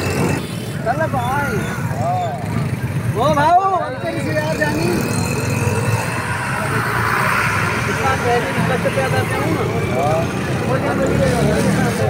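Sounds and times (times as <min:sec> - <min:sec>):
bus engine passing: 0:00.0 - 0:12.0
motorcycles: 0:00.0 - 0:12.0
road traffic rumble: 0:00.0 - 0:12.0.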